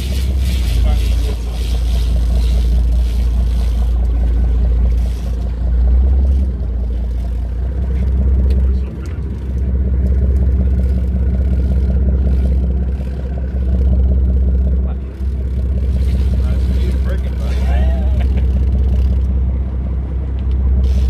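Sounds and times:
boat engine droning: 0.0s - 21.0s.

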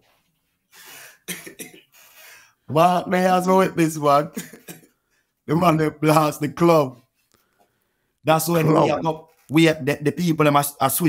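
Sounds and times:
man coughing: 1.1s - 1.9s, 4.3s - 5.0s.

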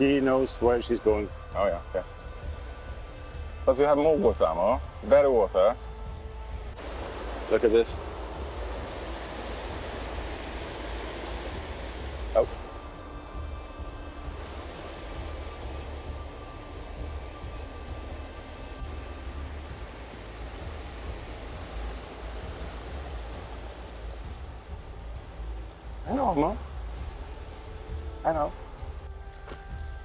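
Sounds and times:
stream rushing over rocks: 6.1s - 29.8s.

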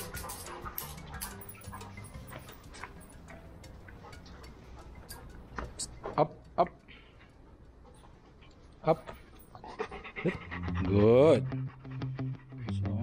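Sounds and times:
dog claws clicking on tiles: 0.0s - 5.8s.

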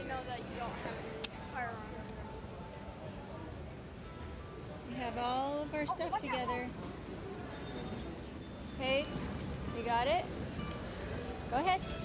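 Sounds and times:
steady background hum: 0.0s - 7.4s
indistinct voices talking: 5.8s - 6.8s.

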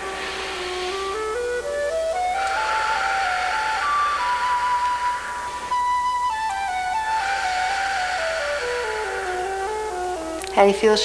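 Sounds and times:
soft flute-like melody: 0.0s - 10.7s.

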